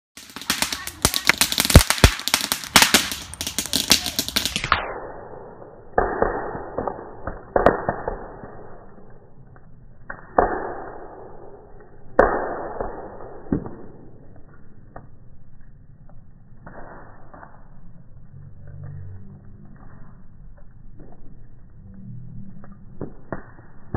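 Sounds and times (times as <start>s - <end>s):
bonfire crackling and popping: 0.2s - 23.9s.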